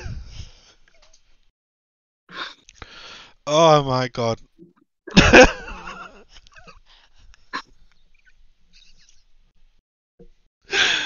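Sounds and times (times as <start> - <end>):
stifled laughter: 5.1 - 7.8.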